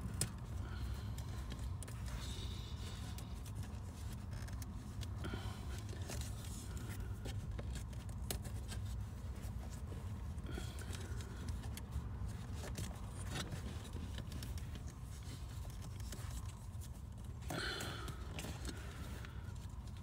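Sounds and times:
clicks and scrapes of wiring: 0.0 - 20.0.

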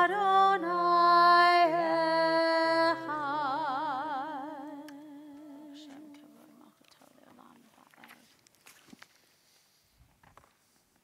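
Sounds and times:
faint rustles: 5.7 - 11.0.

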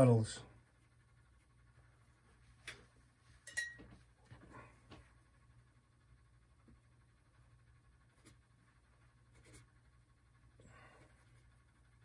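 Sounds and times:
sharp clink: 3.4 - 3.8.

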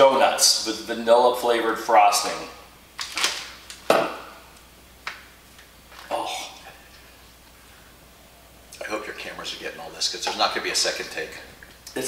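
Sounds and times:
pouch crinkling: 3.0 - 3.7.

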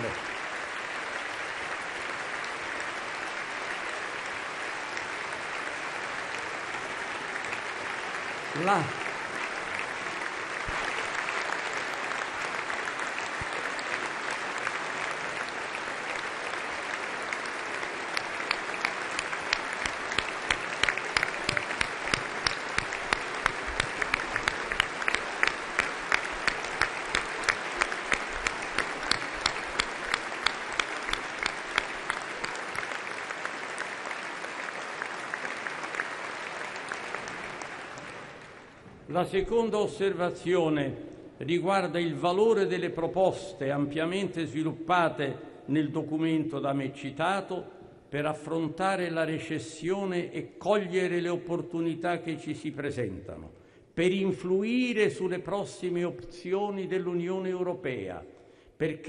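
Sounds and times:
rhythmic clapping in unison: 0.0 - 38.9
crowd applauding: 0.0 - 39.2.

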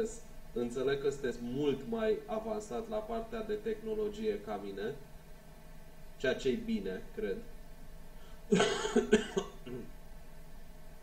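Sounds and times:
man coughing: 8.5 - 9.9.

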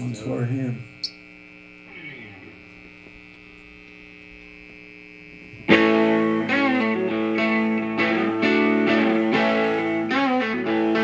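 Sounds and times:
electrical mains hum and buzz: 0.0 - 11.0.

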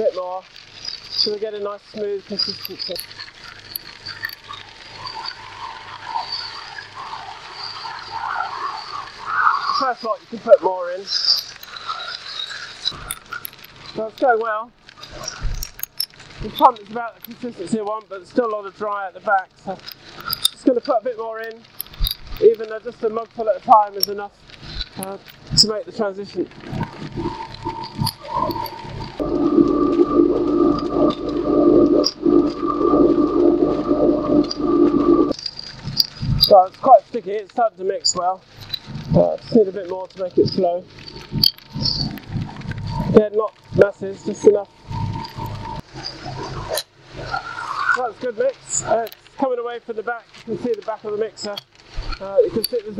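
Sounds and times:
wet mix tumbling and rattling: 12.8 - 17.7, 19.6 - 34.2
loud steady motor hum: 29.0 - 35.3.

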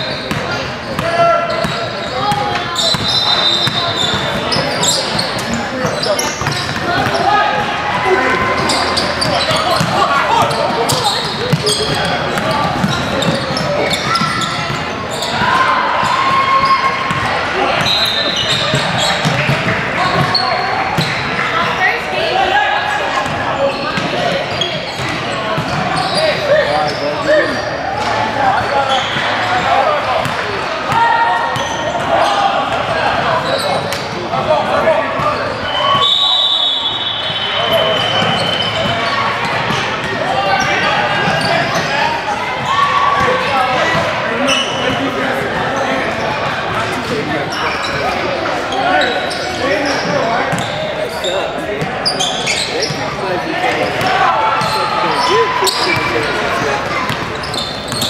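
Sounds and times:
indistinct chatter: 0.0 - 58.0.

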